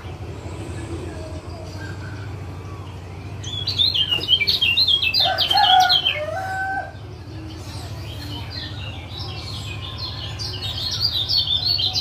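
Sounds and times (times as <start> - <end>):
lower held bird notes: 0.0 - 12.0
steady low hum: 0.0 - 12.0.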